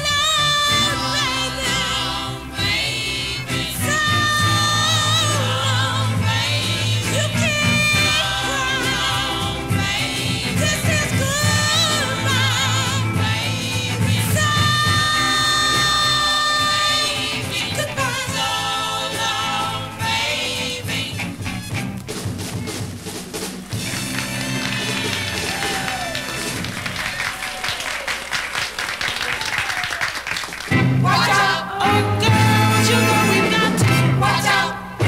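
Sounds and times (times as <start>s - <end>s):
soul band holding a chord: 0.0s - 21.7s
audience clapping and cheering: 23.4s - 31.5s.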